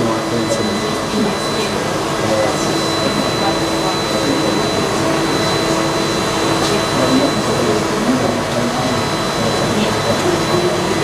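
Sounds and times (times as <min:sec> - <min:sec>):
fan rushing noise: 0:00.0 - 0:11.0
high-pitched whine: 0:00.0 - 0:11.0.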